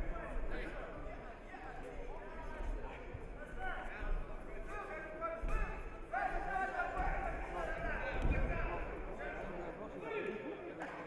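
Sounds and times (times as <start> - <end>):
men shouting in echoing hall: 1.5 - 10.4.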